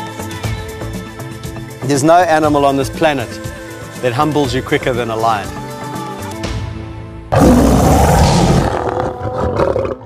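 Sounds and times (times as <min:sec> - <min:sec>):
background music: 0:00.0 - 0:10.0
lion roaring: 0:07.3 - 0:10.0.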